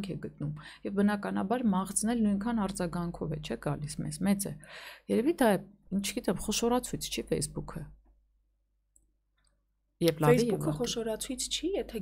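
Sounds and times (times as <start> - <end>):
woman speaking: 0.0 - 8.0, 10.0 - 12.0.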